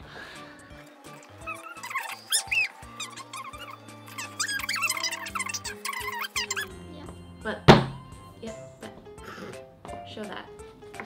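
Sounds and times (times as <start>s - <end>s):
squeaky whistle-like glides: 1.1s - 6.8s.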